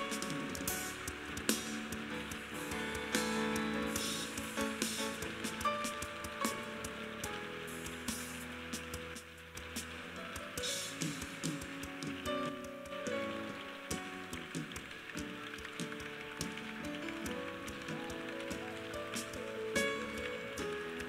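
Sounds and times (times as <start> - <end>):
crowd noise hiss: 0.0 - 21.0
soft keyboard chords: 0.0 - 21.0.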